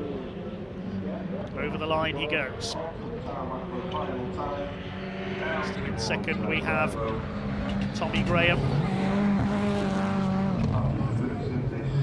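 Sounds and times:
racing car engines: 0:00.0 - 0:12.0.

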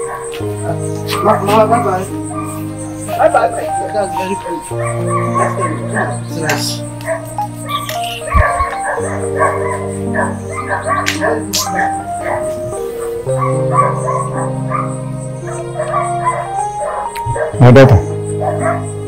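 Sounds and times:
dog barking: 0:00.0 - 0:02.6, 0:04.6 - 0:18.9
film background music: 0:00.0 - 0:19.0.

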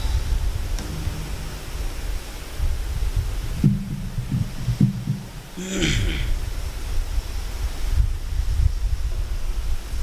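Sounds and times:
microphone handling rumble: 0:00.0 - 0:09.4
person humming: 0:05.6 - 0:06.4.

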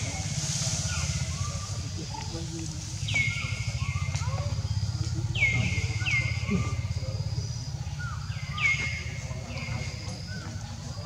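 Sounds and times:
high steady bird trill: 0:02.9 - 0:11.0.

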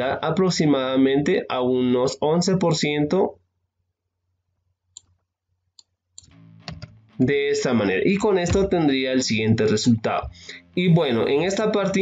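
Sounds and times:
soft background music: 0:06.3 - 0:12.0.

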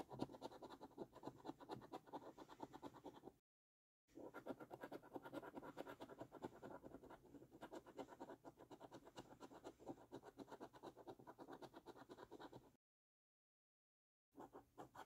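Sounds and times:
coin scratching a scratch card: 0:00.0 - 0:03.4, 0:04.2 - 0:12.7.

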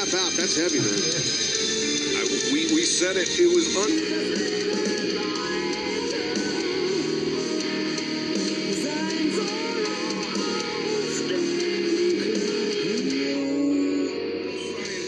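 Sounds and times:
metal song with electric guitars: 0:00.0 - 0:15.0
woman singing: 0:03.8 - 0:15.0.

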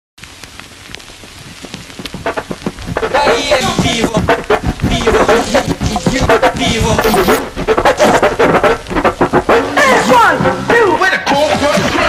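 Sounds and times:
vinyl crackle and pops: 0:00.2 - 0:12.0
hip hop beat: 0:02.1 - 0:12.0.

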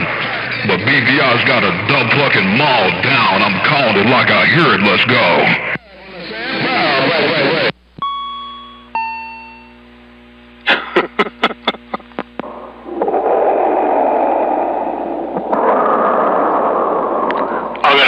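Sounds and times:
radio static rushing noise: 0:11.2 - 0:18.0.

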